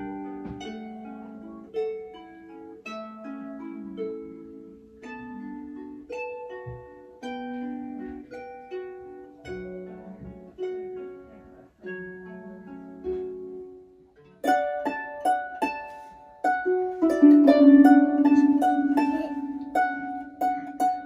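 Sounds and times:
harp playing hymn melody: 0.0 - 21.0.

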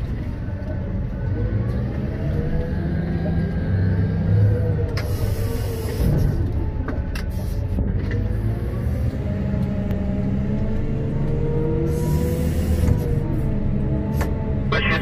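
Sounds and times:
diesel engine running under load: 0.0 - 15.0.

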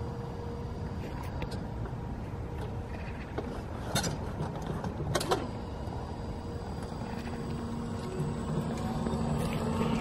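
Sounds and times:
electric drive hum: 0.0 - 10.0
small tyres rumbling on pavers: 1.0 - 10.0.

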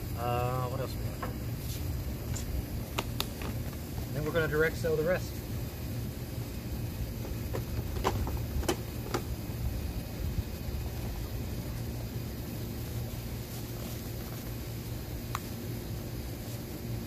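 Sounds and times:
low background rumble: 0.0 - 17.0.

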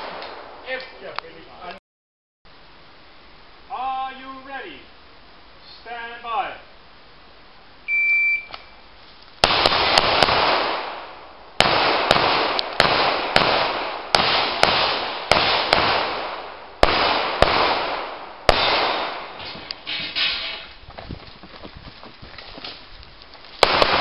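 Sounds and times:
shot timer beep: 7.9 - 8.7
pistol shots echoing: 9.4 - 19.4, 23.6 - 24.0.

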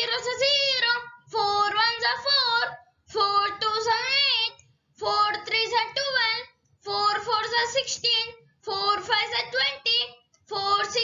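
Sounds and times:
child chanting in sing-song: 0.0 - 11.0.

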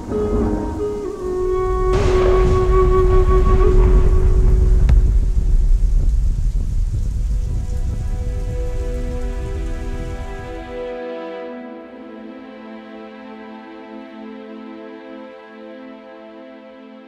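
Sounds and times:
sharp thunder crack: 0.0 - 10.8
thunder rumbling: 0.0 - 11.0
heavy rain: 0.0 - 16.4
soft sustained music notes: 0.0 - 17.0.

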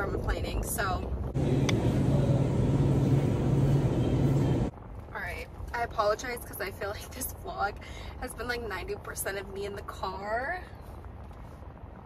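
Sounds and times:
steady low hum: 0.0 - 9.0
store background noise: 0.0 - 11.0.

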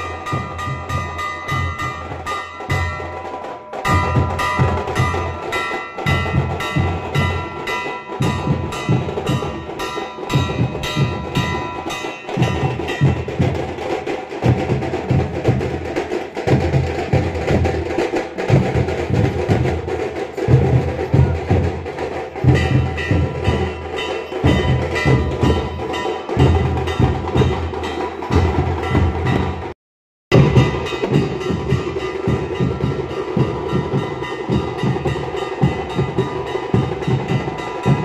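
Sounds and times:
large metal bell ringing: 0.0 - 29.7, 30.3 - 38.0
drums beating fast rhythm: 0.0 - 38.0.

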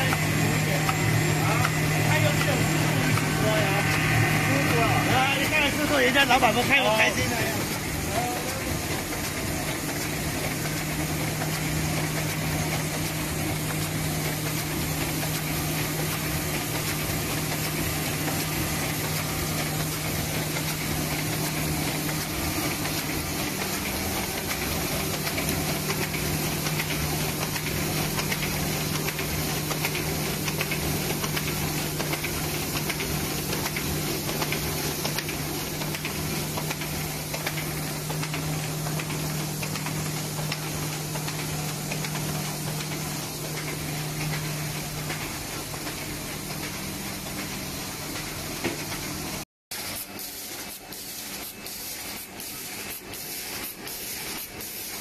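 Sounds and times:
machine humming: 0.0 - 48.8
rapid mechanical clatter of rollers: 0.0 - 55.0.

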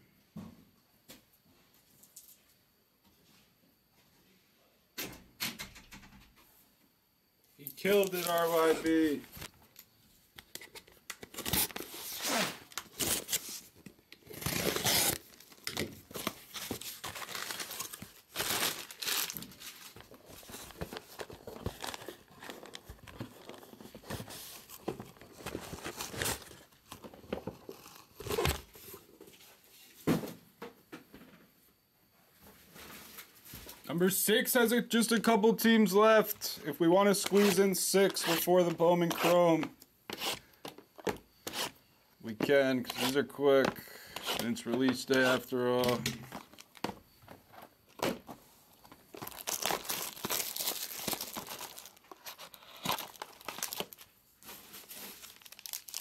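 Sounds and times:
man speaking: 7.6 - 9.3, 33.9 - 39.7, 42.2 - 43.8, 44.4 - 46.2
plastic wrap crinkling and tearing: 11.2 - 28.8, 44.1 - 46.9, 48.9 - 56.0.

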